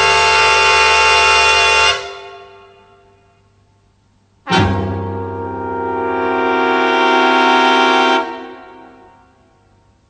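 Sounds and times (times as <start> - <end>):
swing band sustained chord: 4.5 - 9.0.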